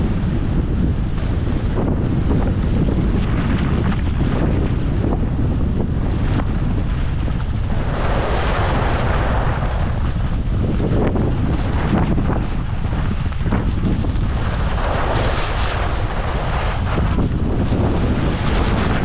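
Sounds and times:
wind buffeting microphone: 0:00.0 - 0:19.0
skis sliding on snow: 0:03.4 - 0:19.0.

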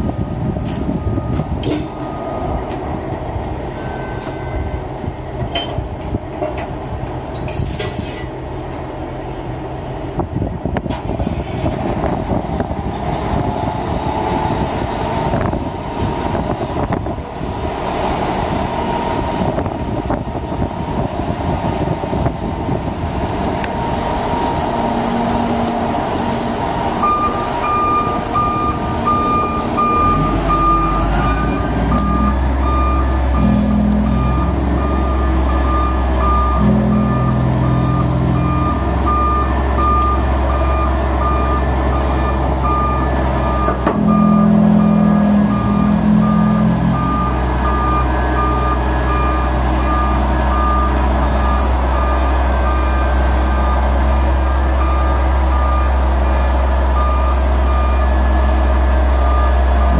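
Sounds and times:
diesel engine running: 0:00.0 - 0:59.9
back-up alarm beeping: 0:03.7 - 0:04.9, 0:27.0 - 0:58.3.

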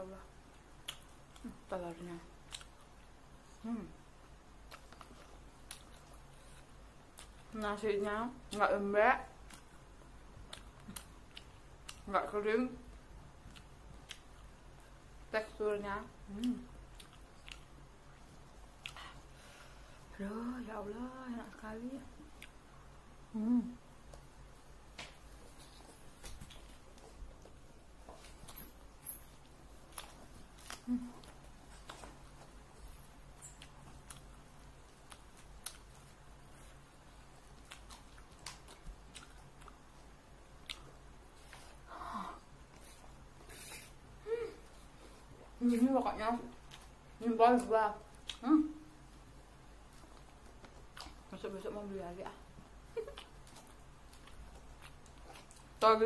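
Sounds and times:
chewing food: 0:00.5 - 0:01.7, 0:02.4 - 0:03.2, 0:08.4 - 0:12.1, 0:13.4 - 0:15.0, 0:16.3 - 0:19.3, 0:25.3 - 0:41.9, 0:49.1 - 0:51.6, 0:52.2 - 0:56.0.

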